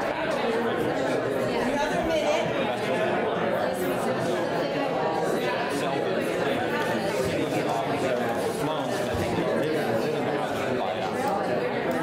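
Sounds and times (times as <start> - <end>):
many people talking: 0.0 - 12.0.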